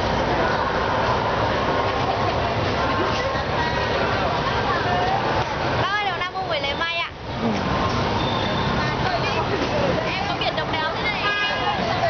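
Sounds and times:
crowd chatter: 0.0s - 12.0s
motorbike traffic: 0.0s - 12.0s.

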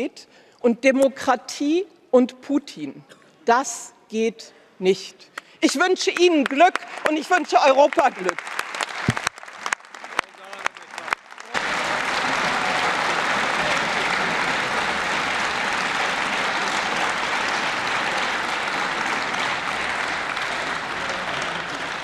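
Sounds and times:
scattered hand claps: 5.3s - 22.0s
audience applause: 6.7s - 22.0s.

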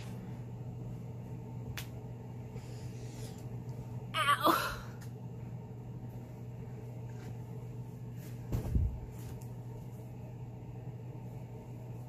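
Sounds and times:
low hum: 0.0s - 12.0s
muffled thump and rustle: 8.2s - 9.4s.

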